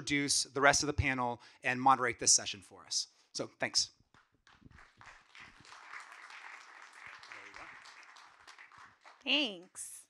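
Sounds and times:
audience applauding: 0:04.4 - 0:09.5.

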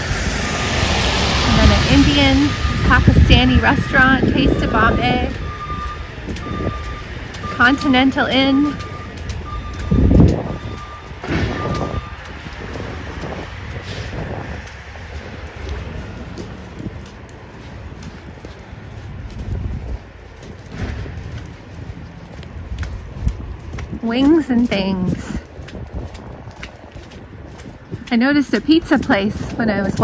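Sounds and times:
traffic on a wet street: 0:00.0 - 0:30.0
high electronic beeps: 0:04.3 - 0:12.2.

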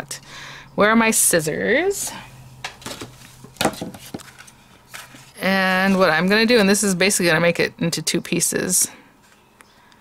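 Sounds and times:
paper rustling: 0:02.7 - 0:06.2.

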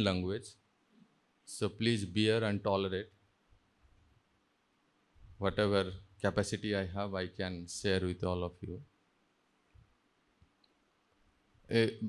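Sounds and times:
faint clicks: 0:09.7 - 0:10.8.

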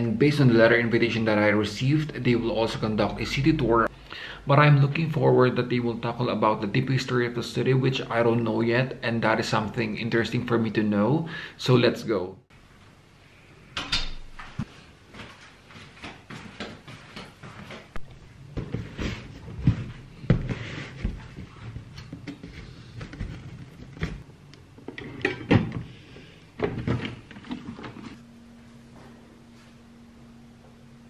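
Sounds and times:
low steady hum: 0:00.0 - 0:16.3, 0:17.0 - 0:31.0.

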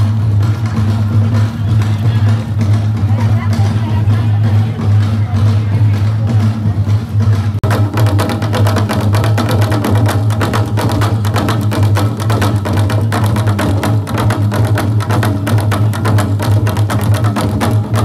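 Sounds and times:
fast drumbeats: 0:00.0 - 0:18.0.

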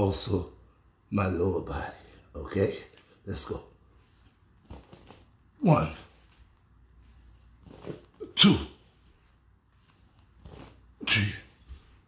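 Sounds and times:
man counting aloud: 0:05.6 - 0:06.2, 0:08.2 - 0:08.9, 0:11.0 - 0:11.6.

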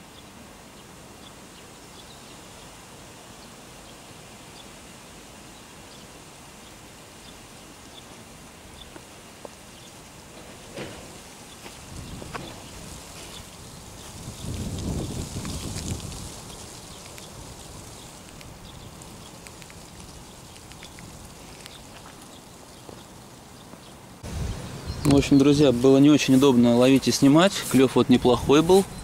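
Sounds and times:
outdoor background noise: 0:00.0 - 0:29.0
small ticks: 0:13.2 - 0:23.9.

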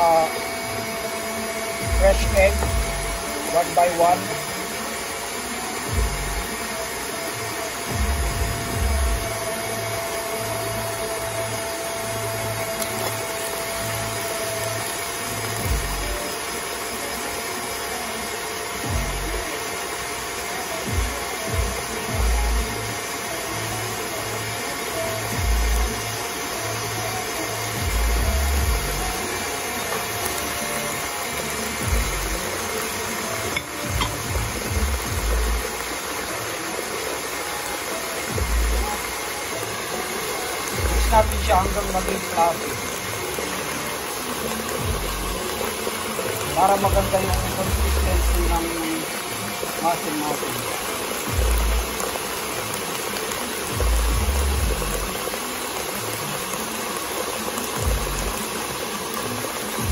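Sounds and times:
electric hand mixer running: 0:00.0 - 0:59.9.

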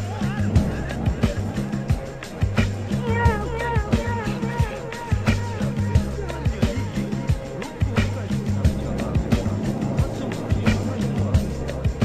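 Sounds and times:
electronic music with steady beat: 0:00.0 - 0:12.0.

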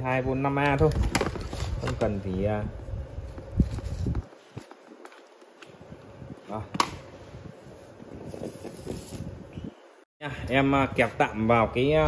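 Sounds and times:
plastic fan being handled: 0:00.5 - 0:02.5, 0:07.9 - 0:09.5.

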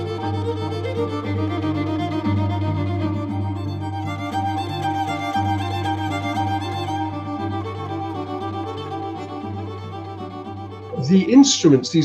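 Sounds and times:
bowed string instruments melody: 0:00.0 - 0:12.0.

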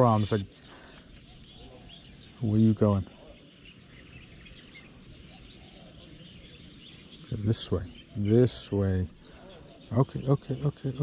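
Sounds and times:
faint outdoor background hum: 0:00.0 - 0:11.0
small birds chirping: 0:00.0 - 0:11.0.

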